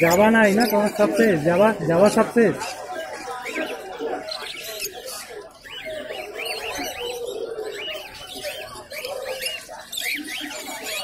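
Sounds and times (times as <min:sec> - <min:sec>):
lovebirds chirping: 0:00.0 - 0:11.0
low background murmur: 0:00.0 - 0:11.0.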